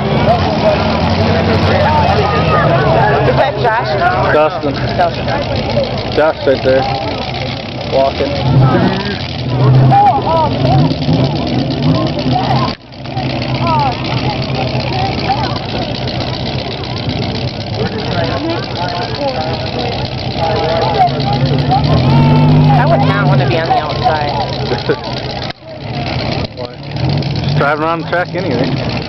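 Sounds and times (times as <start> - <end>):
crowd chatter: 0.0 - 29.0
pickup truck engines running: 0.0 - 29.0.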